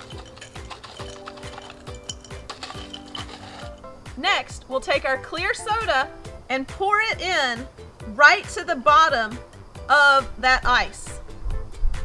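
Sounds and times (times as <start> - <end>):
spoon scraping crushed ice: 0.0 - 3.9.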